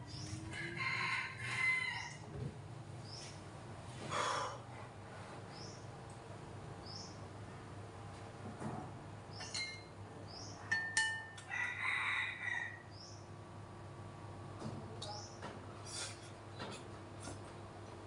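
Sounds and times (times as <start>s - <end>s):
rooster crowing: 0.4s - 2.4s, 11.4s - 12.9s.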